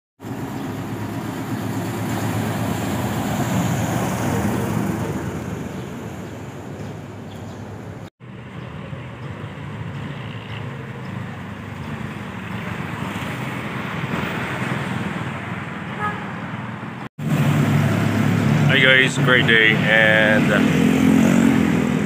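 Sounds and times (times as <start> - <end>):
street traffic rumble: 0.2 - 22.0.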